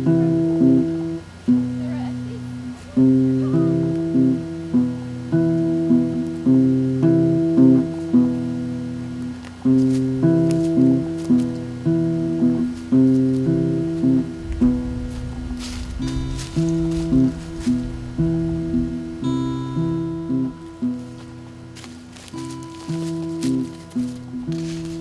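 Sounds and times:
acoustic guitar plucked notes: 0.0 - 25.0.

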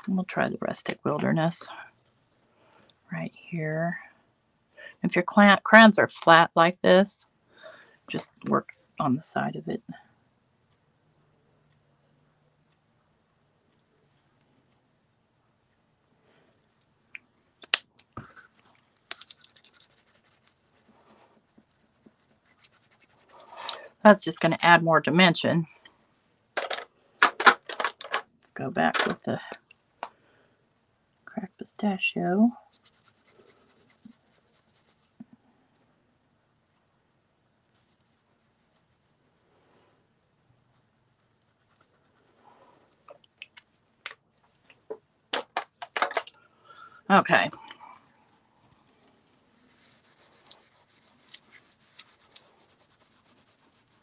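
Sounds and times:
crayon scraping on cardstock: 49.7 - 54.0.

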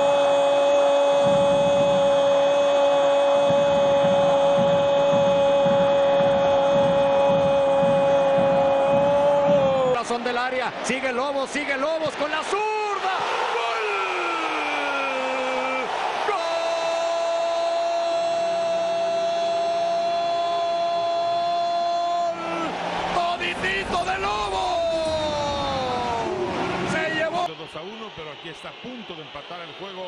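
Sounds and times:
football commentator's goal cry: 0.0 - 10.1, 11.7 - 27.5.

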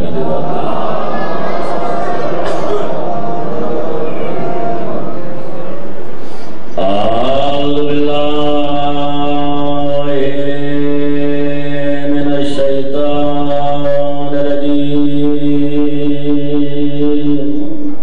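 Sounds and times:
man chanting a held note: 0.0 - 18.0.

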